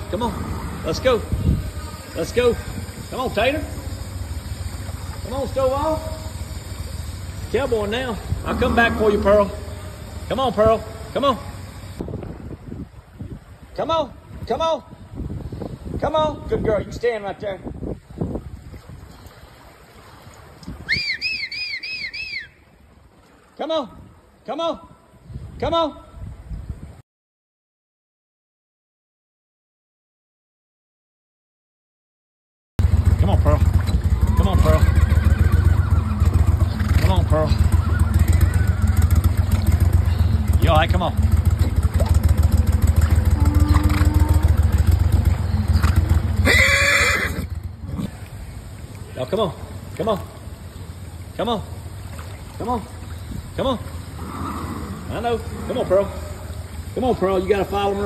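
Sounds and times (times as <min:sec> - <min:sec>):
boat motor droning: 0:00.0 - 0:12.1, 0:32.8 - 0:58.0
water sloshing and splashing: 0:00.0 - 0:15.3, 0:17.9 - 0:24.4, 0:32.8 - 0:58.0
short high whistled notes: 0:20.9 - 0:22.6
horse whinnying: 0:34.2 - 0:36.6, 0:37.7 - 0:39.2, 0:43.4 - 0:44.6, 0:46.4 - 0:48.1, 0:54.2 - 0:56.0.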